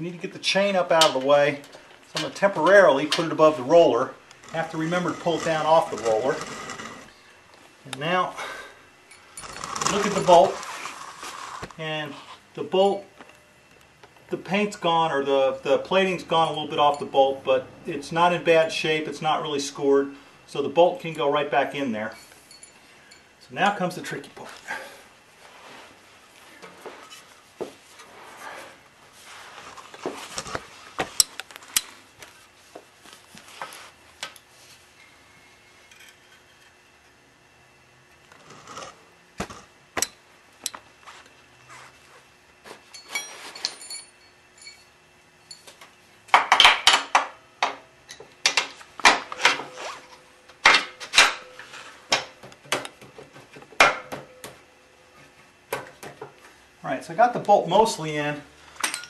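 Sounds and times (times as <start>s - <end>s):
metal clinks and scrapes: 9.1s - 11.6s, 22.1s - 23.4s, 42.8s - 45.8s.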